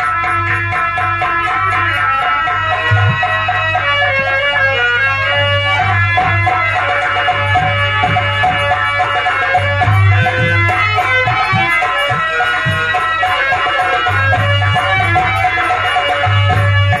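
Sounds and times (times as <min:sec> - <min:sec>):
kettle drum and barrel drum: 0:02.7 - 0:17.0.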